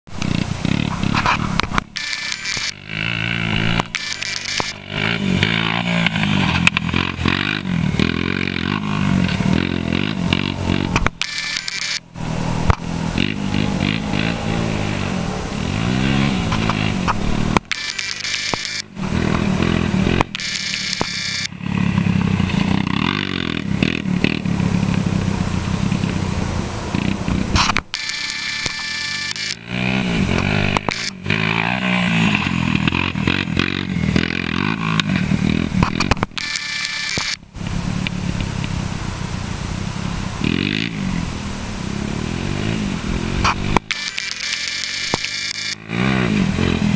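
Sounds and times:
quad engine revving: 0:00.1 - 0:46.9.

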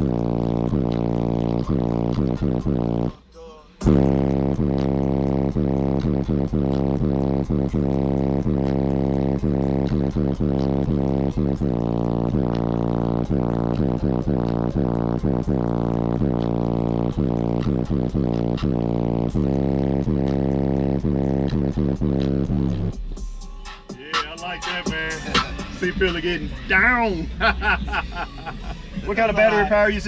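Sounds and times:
bass-heavy electronic music: 0:00.0 - 0:30.0.

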